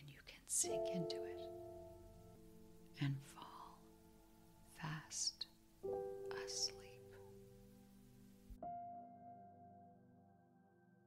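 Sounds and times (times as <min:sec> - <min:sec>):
ambient meditation music: 0:00.5 - 0:11.0.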